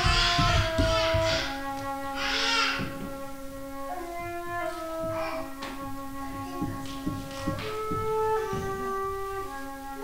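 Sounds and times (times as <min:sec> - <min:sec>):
flute low sustained note: 0:00.2 - 0:10.0.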